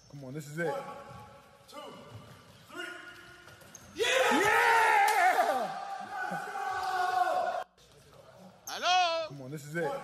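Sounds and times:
man counting over loudspeakers: 8.7s - 10.0s.

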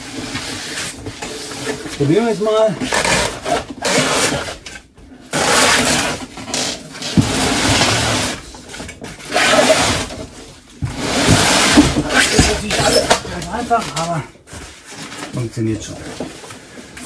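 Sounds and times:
cardboard box scraping and rustling: 5.3s - 16.0s.

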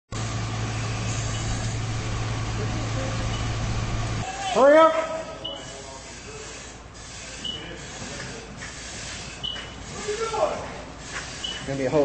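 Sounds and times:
machine drone with hiss: 0.1s - 4.3s, 5.2s - 12.0s.

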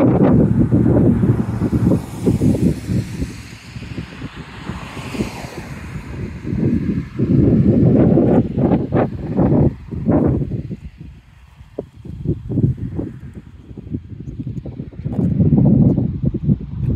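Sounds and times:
wind buffeting microphone: 0.0s - 16.9s.

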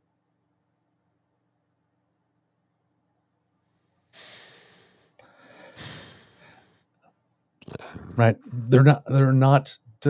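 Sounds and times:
person breathing: 3.6s - 6.9s.

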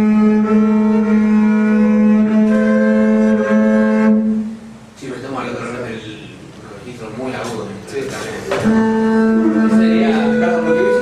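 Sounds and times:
bowed double bass note: 0.0s - 4.9s, 8.6s - 11.0s
voices: 5.0s - 11.0s.

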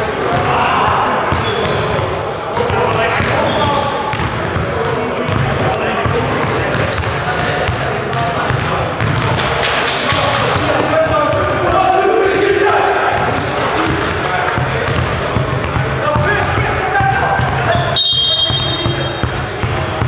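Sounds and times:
people talking in echoing gym: 0.0s - 20.0s.

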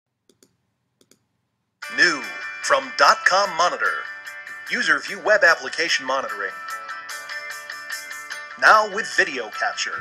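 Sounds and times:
computer mouse clicks: 0.2s - 1.3s.

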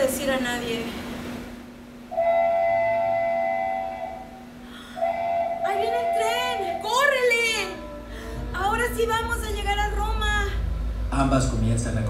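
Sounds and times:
train whistle blast: 2.0s - 9.2s.

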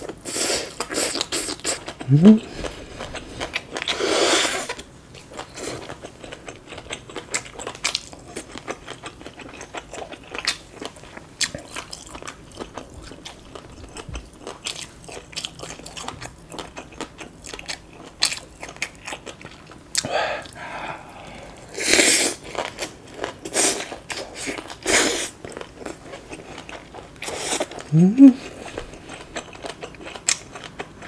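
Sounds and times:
crunchy chewing: 0.0s - 31.0s.

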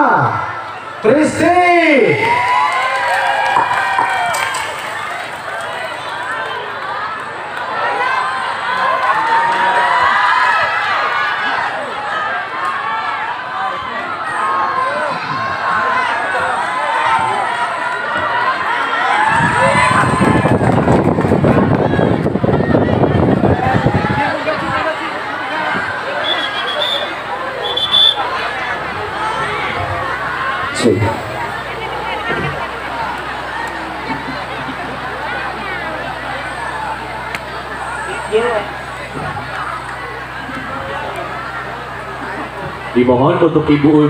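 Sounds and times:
crowd cheering and shouting: 0.0s - 44.0s.

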